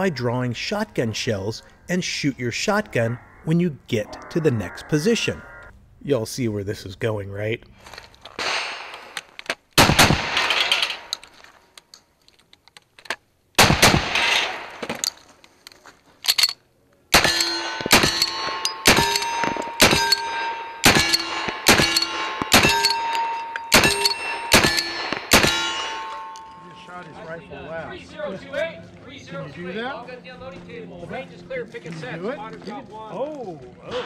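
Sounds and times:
rifle shots: 8.4 - 9.2, 9.8 - 11.0, 13.6 - 14.9, 17.1 - 26.2
shotgun blasts: 9.8 - 11.0, 13.6 - 14.8, 23.7 - 26.0
steel target ringing: 17.2 - 27.3.

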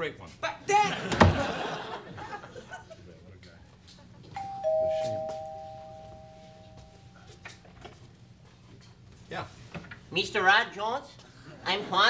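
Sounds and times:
two-note doorbell chime: 4.4 - 7.5.

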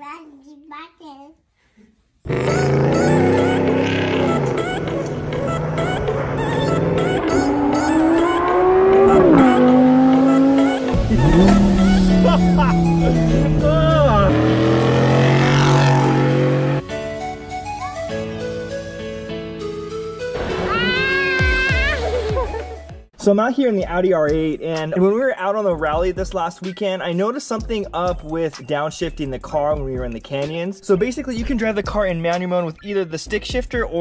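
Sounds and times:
car engine accelerating hard: 2.3 - 16.8.

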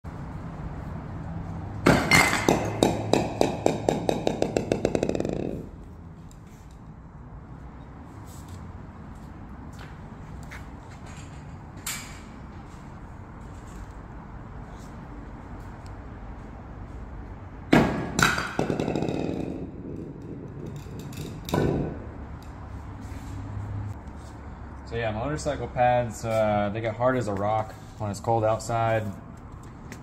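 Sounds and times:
ball bouncing on concrete: 1.8 - 6.0, 17.7 - 22.6
bowling ball striking: 1.9 - 5.7, 17.7 - 22.2.

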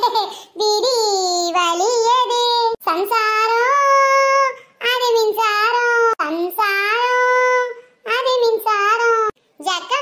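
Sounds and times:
high-pitched cartoon voice singing: 0.0 - 10.0.

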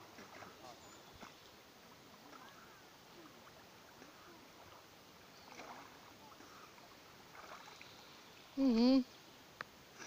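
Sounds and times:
water splashing and lapping: 0.0 - 8.6, 9.8 - 10.0.

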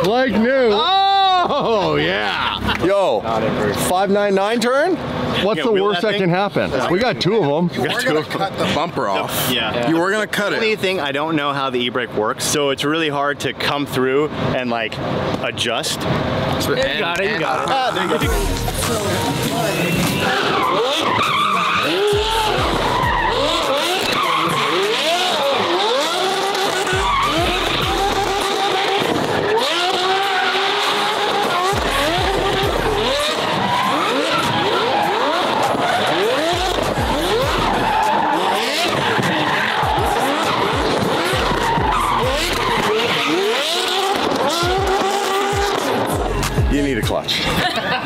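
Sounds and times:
tyres skidding and squealing: 0.0 - 48.0
sports car engine revving: 17.4 - 47.6.

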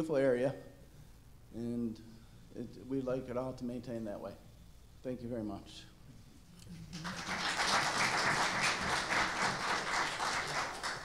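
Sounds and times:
audience applauding: 6.8 - 11.0.

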